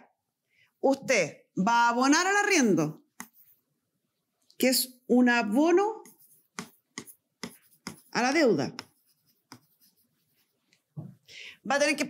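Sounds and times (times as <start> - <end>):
pen tapping on whiteboard: 3.2 - 3.4, 6.0 - 9.9
pen scratching on whiteboard: 3.2 - 3.6, 5.9 - 10.8.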